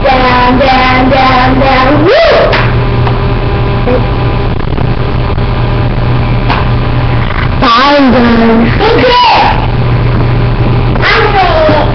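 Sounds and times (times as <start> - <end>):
continuous low hum: 0.0 - 11.9
steady loud hiss: 0.0 - 11.9.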